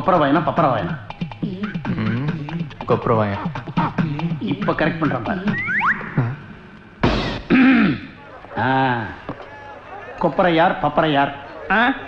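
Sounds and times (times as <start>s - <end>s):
man clearing his throat: 7.4s - 8.7s.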